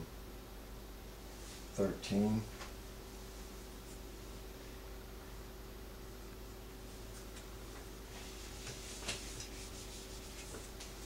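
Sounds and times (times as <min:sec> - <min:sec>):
eraser rubbing on whiteboard: 0:08.2 - 0:11.0.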